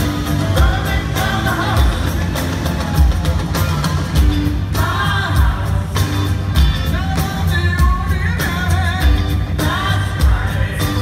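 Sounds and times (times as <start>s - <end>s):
driving drum beat: 0.0s - 11.0s
lead singer: 0.0s - 11.0s
live rock band playing: 0.0s - 11.0s.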